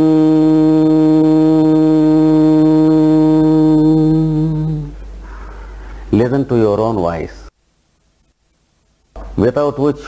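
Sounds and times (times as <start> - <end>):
man intoning a long tone: 0.0 - 5.0.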